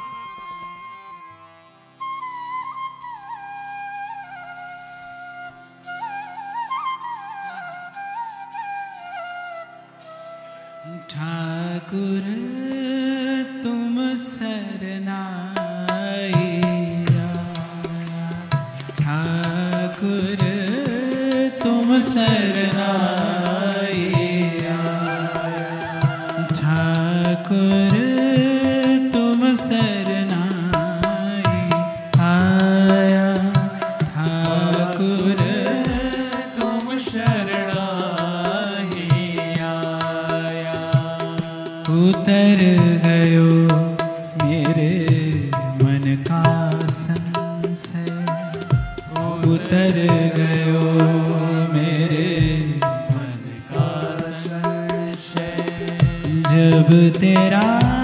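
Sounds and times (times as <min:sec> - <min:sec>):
person singing devotional song: 0:10.9 - 0:58.0
instrumental accompaniment: 0:15.5 - 0:58.0
percussion strikes: 0:15.6 - 0:58.0.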